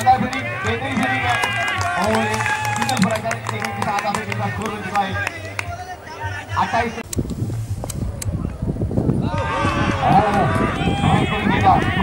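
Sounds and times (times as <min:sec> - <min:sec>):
man talking: 0:00.0 - 0:07.1.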